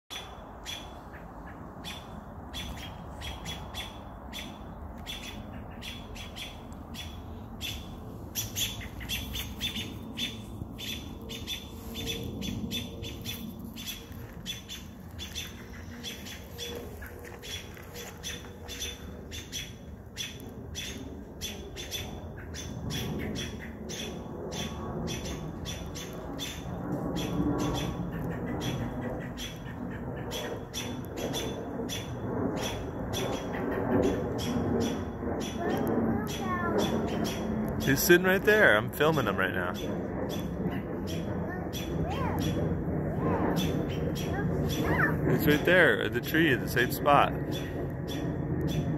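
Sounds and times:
birds giving sharp alarm notes: 0.1s - 48.9s.

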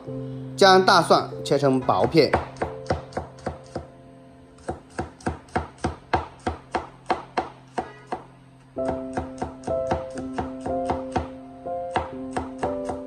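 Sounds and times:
cleaver chopping on wooden board: 4.6s - 11.3s, 11.9s - 13.0s.

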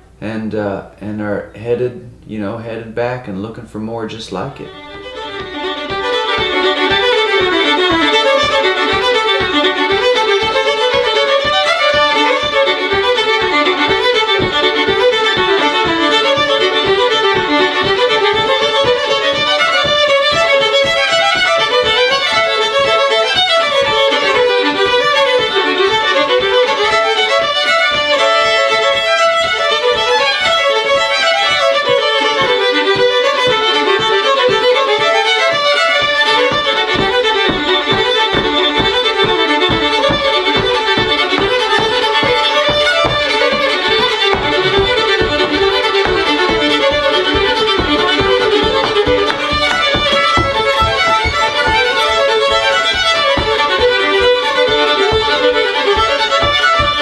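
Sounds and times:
two fiddles playing fast tune: 0.0s - 57.0s
feet thumping on wooden floor: 4.7s - 57.0s.

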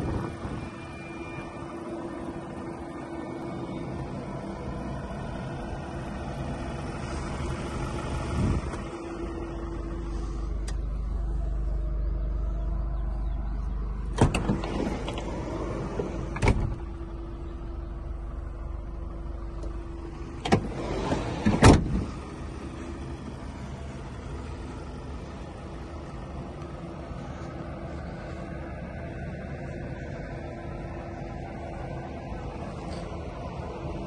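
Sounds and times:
steady low hum: 0.0s - 34.0s
van door clunking: 14.0s - 17.1s, 20.2s - 22.8s.

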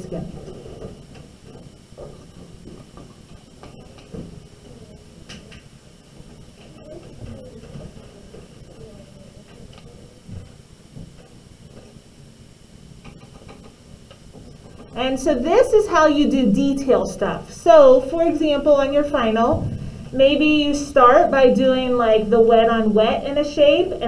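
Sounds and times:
low room noise: 0.0s - 24.0s
faint voices murmuring: 3.7s - 11.0s.

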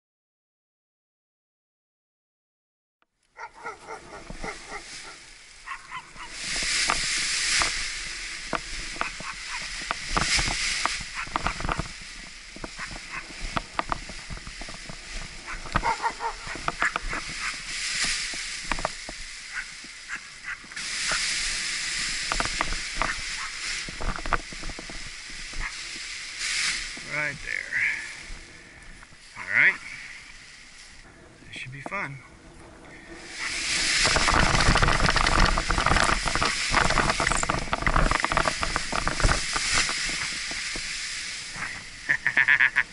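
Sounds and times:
wind buffeting microphone: 3.7s - 27.0s, 32.2s - 42.1s
nylon fabric rustling and snapping: 33.3s - 42.0s.

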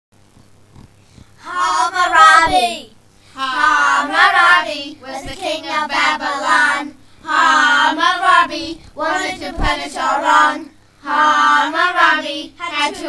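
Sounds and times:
children singing unaccompanied: 1.4s - 13.0s.

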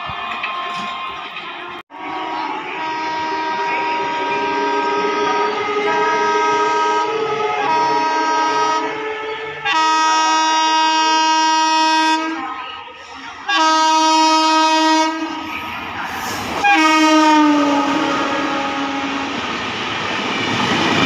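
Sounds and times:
train coaches rushing and clattering: 0.0s - 21.0s
train horn blasts: 1.9s - 12.6s, 13.4s - 15.6s, 16.6s - 19.4s.

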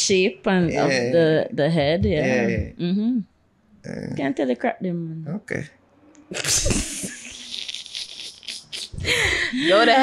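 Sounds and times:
person laughing: 6.3s - 10.0s.

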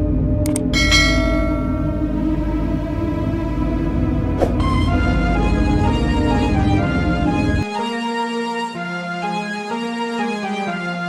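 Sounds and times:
dark ambient music: 0.0s - 11.0s
bright bell chime: 0.8s - 2.3s.

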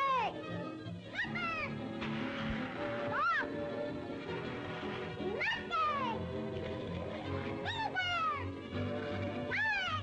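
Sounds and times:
orchestral music: 0.1s - 10.0s.

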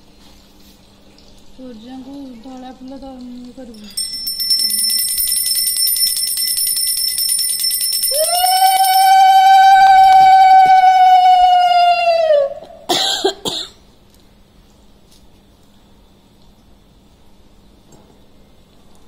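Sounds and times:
hand bell ringing rapidly: 3.7s - 9.1s
conch shell blown: 8.1s - 12.6s.

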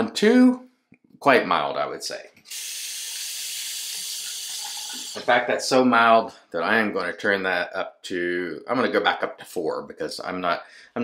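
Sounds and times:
tap water running into sink: 2.5s - 5.4s.

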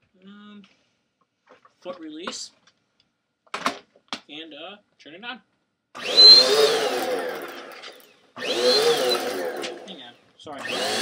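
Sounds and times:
vacuum cleaner motor whine: 6.0s - 11.0s.

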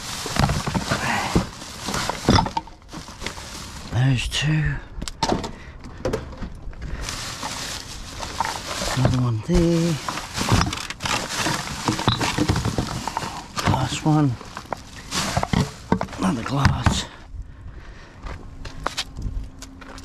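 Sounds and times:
bottles and cans clacking: 0.0s - 3.7s, 9.8s - 16.9s
plastic bags rustling: 0.0s - 4.2s, 6.9s - 17.0s.

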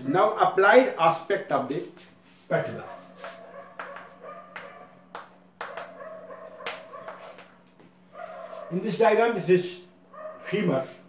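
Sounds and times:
steady low hum: 0.0s - 11.0s
chalk tapping and scraping on blackboard: 1.8s - 6.0s, 6.6s - 7.5s.

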